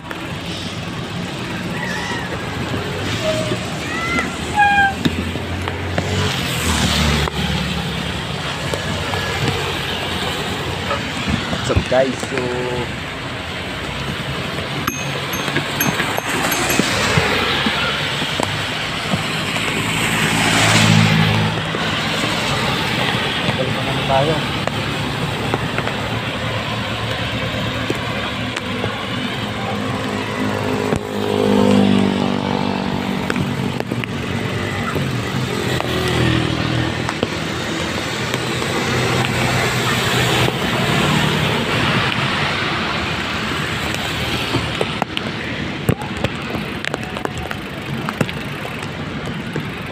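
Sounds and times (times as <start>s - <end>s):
rain and wet road noise: 0.0s - 14.8s, 17.8s - 49.9s
passing vehicle with tyre spray: 18.1s - 45.7s.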